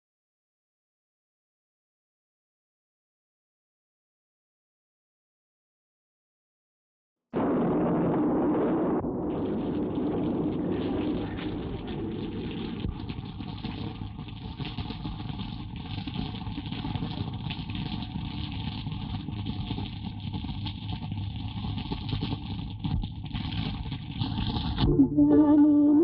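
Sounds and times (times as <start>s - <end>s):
low rumble: 7.4s - 13.3s
heavy rain rushing: 7.4s - 13.5s.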